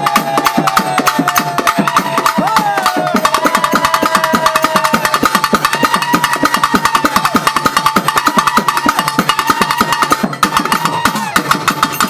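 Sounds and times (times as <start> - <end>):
drums playing fast rhythm: 0.0 - 12.0.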